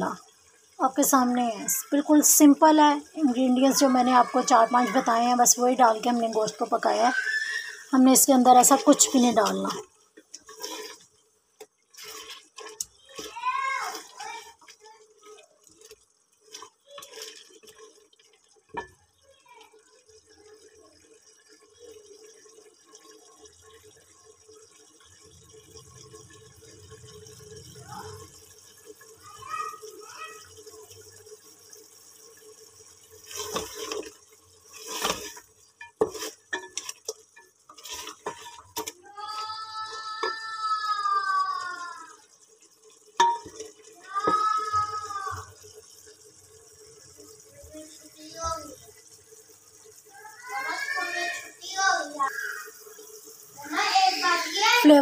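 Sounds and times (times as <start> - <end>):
meat frying and bubbling in oil: 0.0 - 55.0
spatula knocking and scraping pot: 8.6 - 11.0, 34.8 - 39.0, 43.2 - 45.0.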